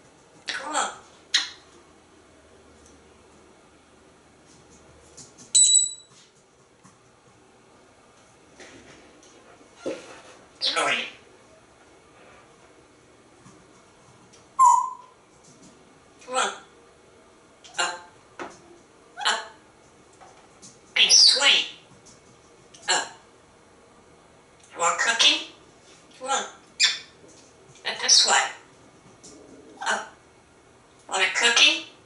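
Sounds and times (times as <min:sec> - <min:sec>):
parrot whistle: 0:14.6 - 0:15.1.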